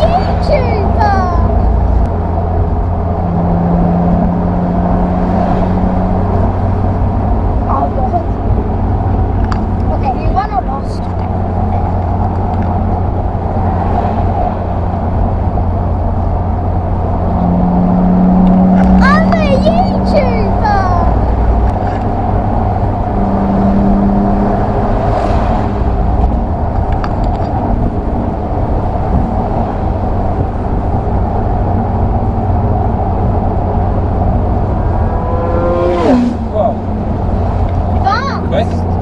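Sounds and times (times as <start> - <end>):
car engine cruising: 0.0 - 39.0
road and wind noise: 0.0 - 39.0.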